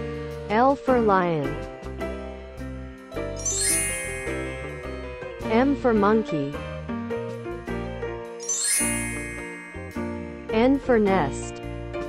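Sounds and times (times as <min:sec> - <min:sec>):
background music held notes: 0:01.7 - 0:12.0
tinkling chime: 0:03.4 - 0:05.6, 0:08.4 - 0:10.6.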